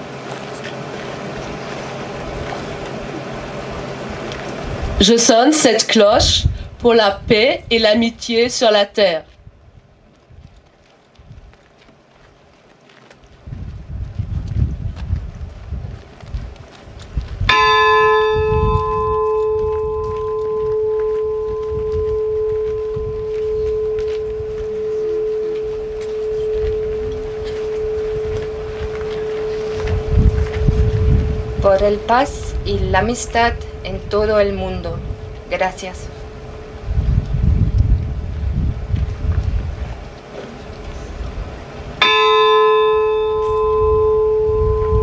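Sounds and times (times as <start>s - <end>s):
bell ringing: 17.5s - 32.1s, 42.0s - 45.0s.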